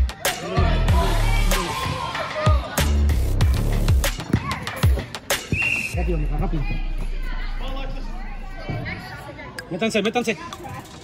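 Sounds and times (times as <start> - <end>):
background music with deep bass: 0.0 - 5.4.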